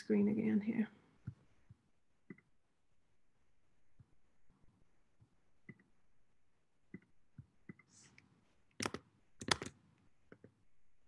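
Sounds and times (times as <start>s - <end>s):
computer keys clicking: 8.8s - 10.5s.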